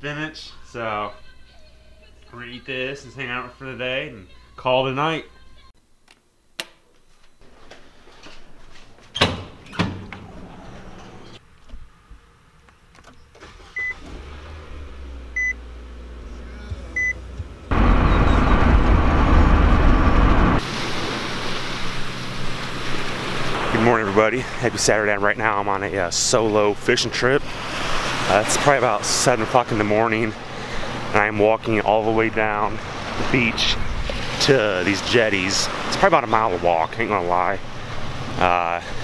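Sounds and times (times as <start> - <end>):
car engine starting and running: 10.1 - 39.0
car warning chime beeping: 13.7 - 14.0, 15.4 - 15.6, 16.9 - 17.3.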